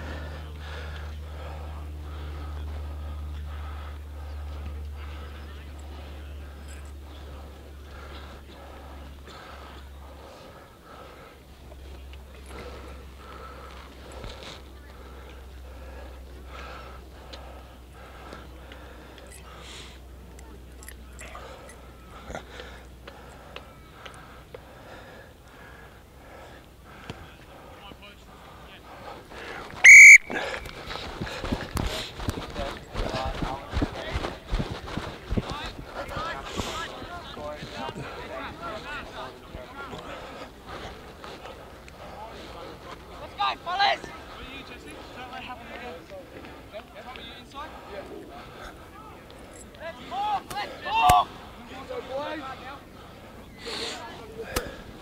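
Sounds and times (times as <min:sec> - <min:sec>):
distant voices: 0:00.0 - 0:55.0
referee's whistle blast: 0:29.8 - 0:30.4.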